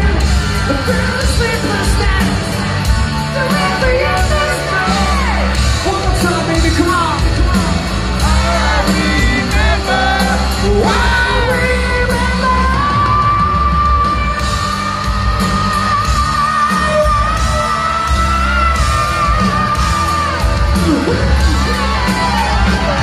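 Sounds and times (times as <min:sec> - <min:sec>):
crowd yelling: 0:00.0 - 0:23.0
drums: 0:00.0 - 0:23.0.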